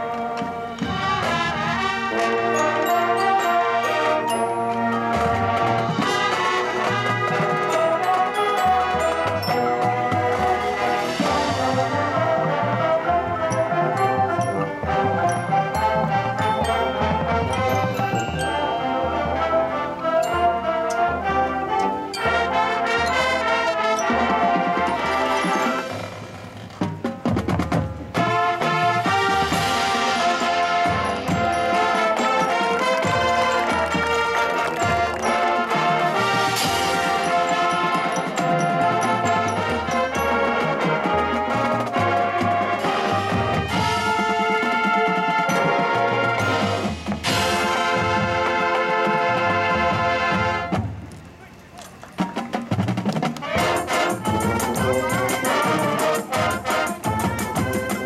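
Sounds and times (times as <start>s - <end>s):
mallet percussion: 0.0s - 48.9s, 51.9s - 58.0s
marching band playing: 0.0s - 58.0s.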